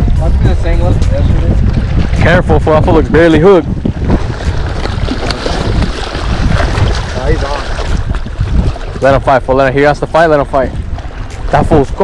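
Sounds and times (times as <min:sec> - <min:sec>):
wind buffeting microphone: 0:00.0 - 0:12.0
water lapping on rocks: 0:01.3 - 0:12.0.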